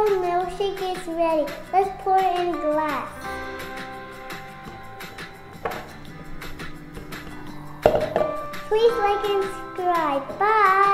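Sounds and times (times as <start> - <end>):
plucked notes: 0.0 - 10.9.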